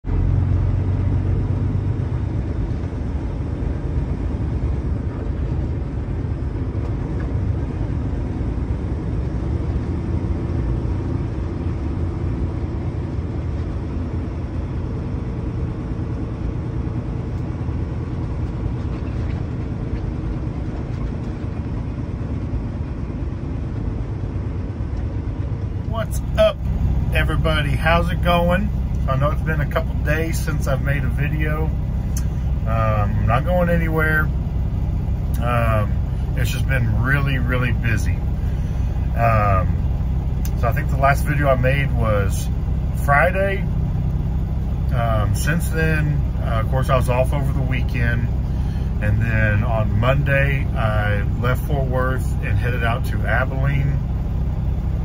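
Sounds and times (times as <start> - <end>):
truck engine and tyres rumbling: 0.0 - 55.0.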